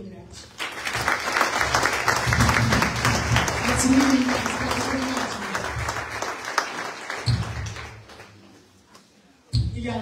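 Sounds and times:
audience applauding: 0.5s - 8.4s.

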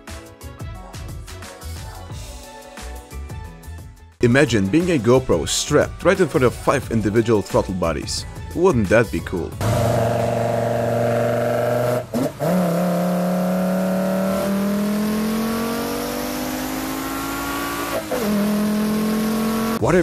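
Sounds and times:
engine revving at intake: 9.6s - 19.8s.

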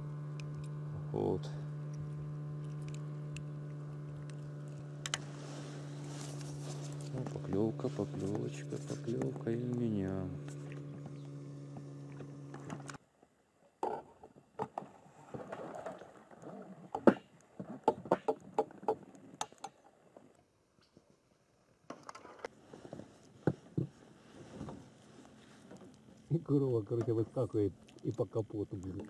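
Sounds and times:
steady hum: 0.0s - 13.0s.

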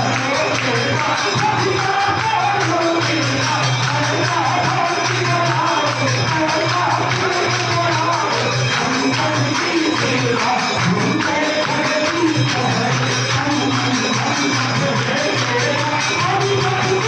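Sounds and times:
jingling percussion: 0.0s - 17.0s.

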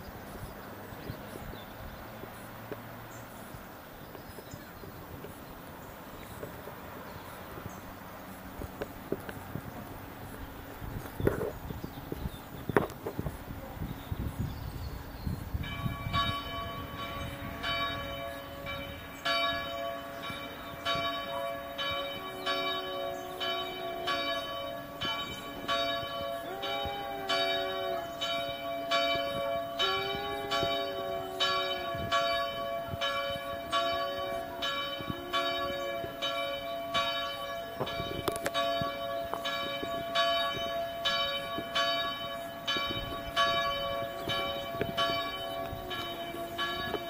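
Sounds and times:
church bell ringing: 15.6s - 47.0s
low wavering tone: 22.0s - 41.7s, 42.3s - 47.0s.

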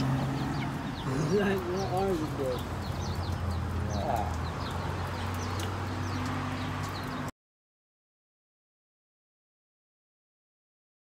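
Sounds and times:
birds chirping: 0.0s - 7.3s.

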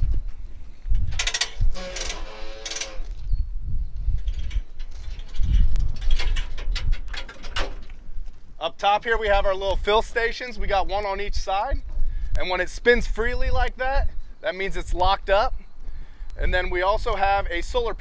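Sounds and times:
hose reel ratchet clicking: 1.2s - 3.1s.

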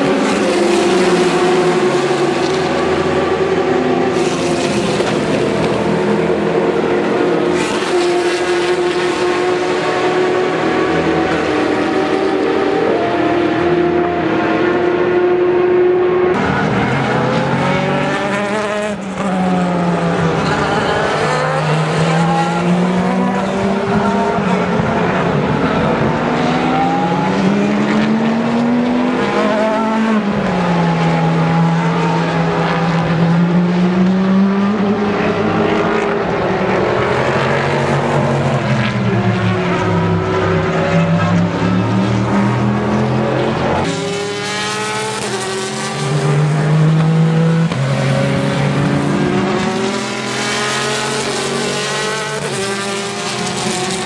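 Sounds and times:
race cars passing: 0.0s - 54.0s.

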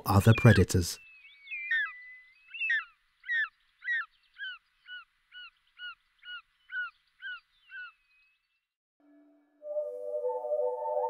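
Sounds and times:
bird of prey calling: 0.2s - 8.4s.

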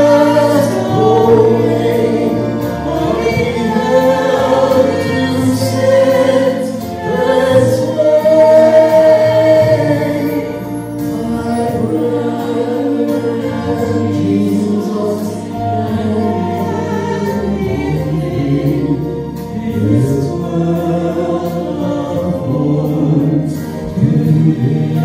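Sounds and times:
man and woman singing: 0.0s - 25.0s.

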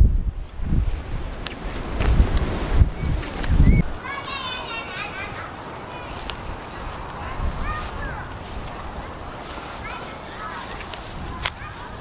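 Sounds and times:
small bird chirping: 3.0s - 6.9s, 9.6s - 11.6s.

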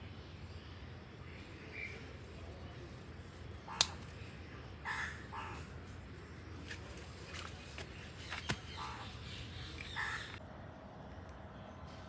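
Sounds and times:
scissors snipping stem: 3.6s - 4.3s.

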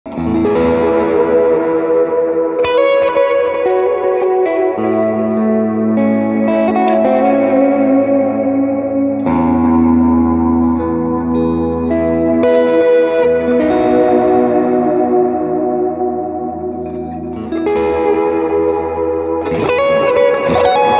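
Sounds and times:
electric guitar chords and notes: 0.0s - 20.9s.

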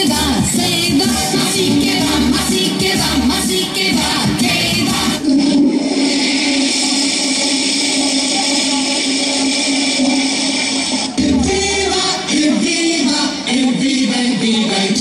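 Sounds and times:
backing music: 0.0s - 15.0s.

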